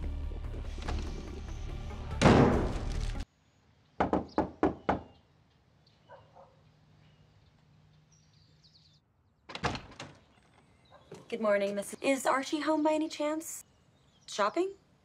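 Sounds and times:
knocks on wooden door: 4.0 - 5.1.

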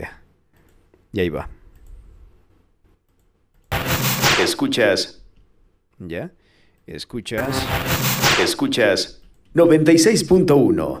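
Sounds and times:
radio tuning static: 3.7 - 5.0, 7.4 - 9.1.

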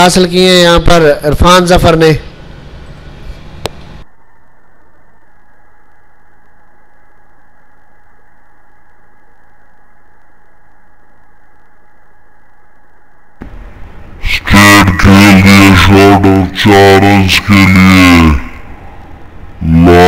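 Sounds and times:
faint steady hum: 0.0 - 20.0
muffled background hiss: 0.0 - 20.0.

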